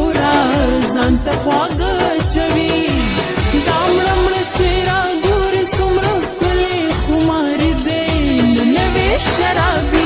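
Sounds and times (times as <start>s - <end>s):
low drum beat: 0.0s - 10.0s
slowed pop song with reverb: 0.0s - 10.0s.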